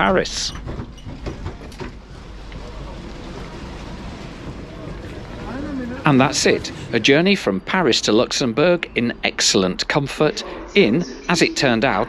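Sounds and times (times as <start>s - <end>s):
railway platform background hiss: 1.3s - 12.0s
faint voice: 10.1s - 12.0s.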